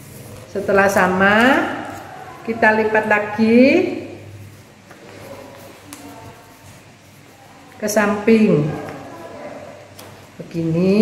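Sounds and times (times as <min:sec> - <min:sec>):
paper being folded: 0:00.0 - 0:02.5, 0:04.4 - 0:10.4.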